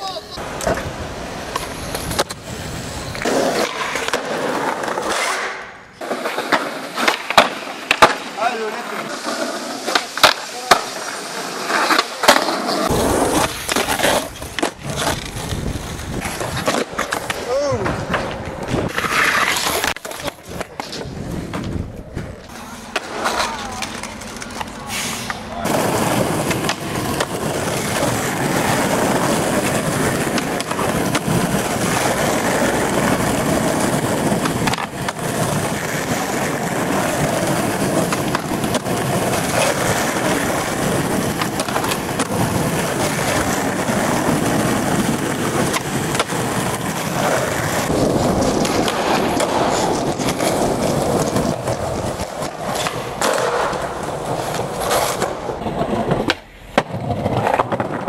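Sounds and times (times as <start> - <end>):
skateboard wheels rolling on concrete: 0.0 - 58.0
skateboard knocking on ground: 3.2 - 8.3, 25.7 - 58.0.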